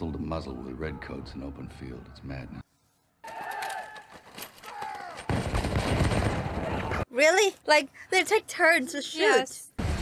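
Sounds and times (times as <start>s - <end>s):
musket fire crackle: 5.2s - 7.0s.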